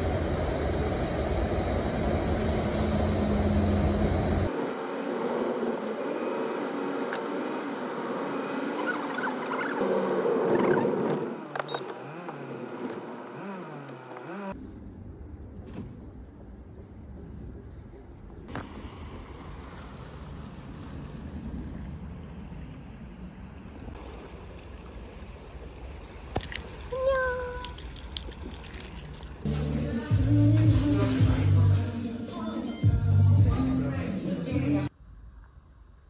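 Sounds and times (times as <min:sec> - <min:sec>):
petrol pump humming: 0:00.0 - 0:04.5
car driving from inside: 0:00.0 - 0:04.6
wind rumbling on microphone: 0:14.6 - 0:24.6.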